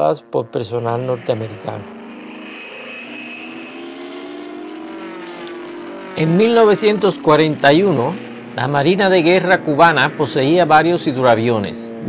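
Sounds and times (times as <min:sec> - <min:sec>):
propeller airplane engine droning: 0:00.0 - 0:12.0.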